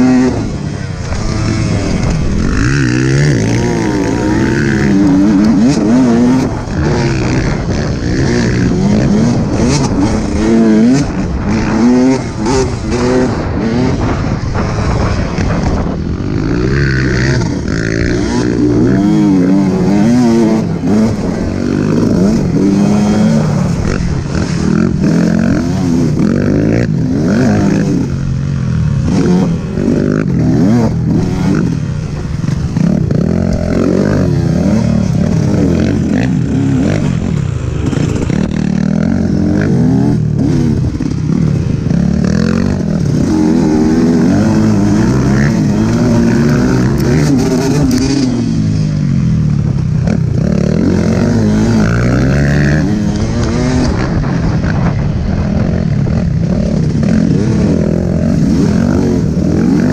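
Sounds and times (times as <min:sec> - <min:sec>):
dirt bike engine revving: 0:00.0 - 0:59.9.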